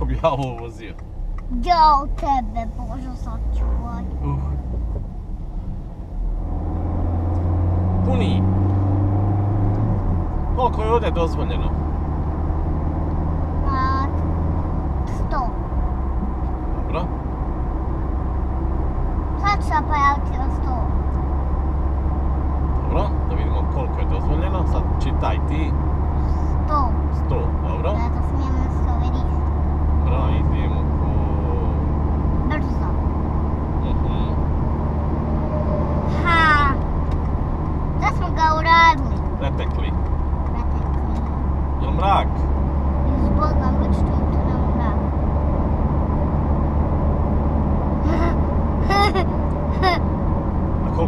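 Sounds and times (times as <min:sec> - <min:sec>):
car engine and tyres droning: 0:00.0 - 0:51.0.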